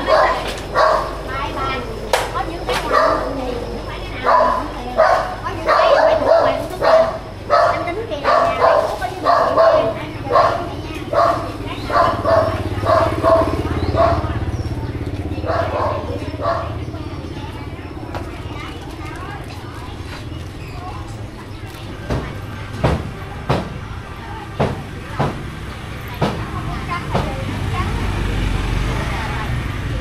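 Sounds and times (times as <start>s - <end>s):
dog barking: 0.0s - 1.2s, 2.7s - 14.6s, 15.3s - 16.9s
motorbike engine passing: 0.0s - 21.6s, 22.2s - 30.0s.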